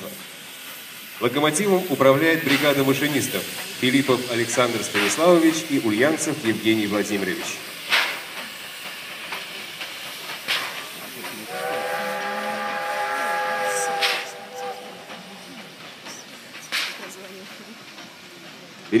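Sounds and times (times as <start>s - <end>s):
sharp puffs of steam: 0.0s - 19.0s
steady hiss of steam: 0.0s - 19.0s
steam locomotive whistle chord: 11.5s - 15.4s.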